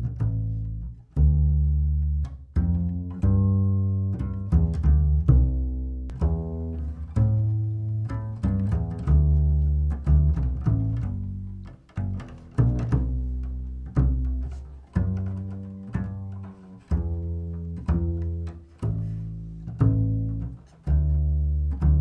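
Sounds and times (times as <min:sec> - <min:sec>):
double bass plucked pizzicato: 0:00.0 - 0:22.0.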